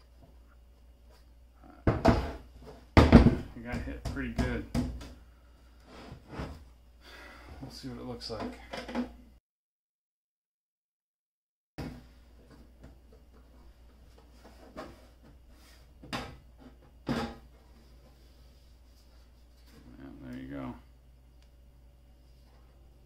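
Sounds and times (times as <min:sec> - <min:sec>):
steady low hum: 0:00.0 - 0:09.4, 0:11.8 - 0:23.0.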